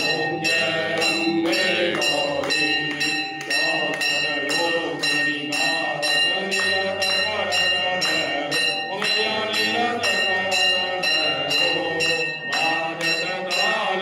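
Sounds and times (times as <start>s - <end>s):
brass bell ringing: 0.0s - 14.0s
group of voices chanting: 0.0s - 14.0s.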